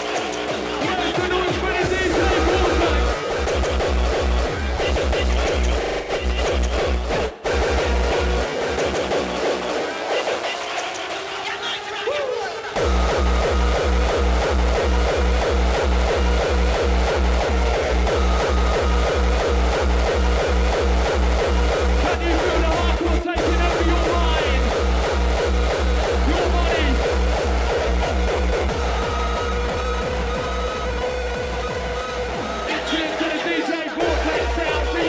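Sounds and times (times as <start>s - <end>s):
repeating synth stabs: 0.0s - 35.0s
fast heavy kick drum: 0.8s - 5.7s, 12.8s - 33.0s.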